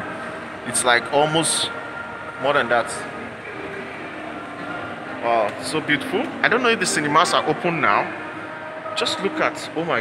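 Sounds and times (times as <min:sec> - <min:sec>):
faint steady tones: 0:00.0 - 0:10.0.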